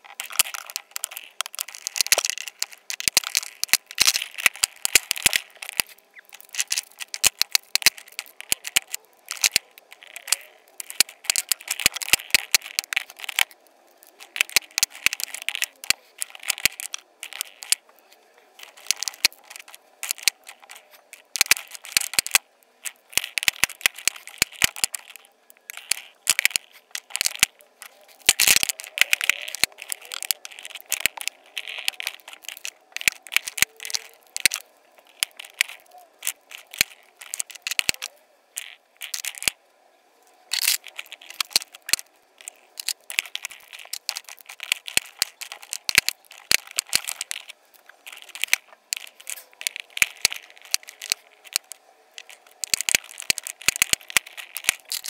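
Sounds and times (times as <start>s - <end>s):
lipstick tubes clicking on plastic: 0.0s - 17.8s, 18.6s - 39.6s, 40.5s - 55.0s.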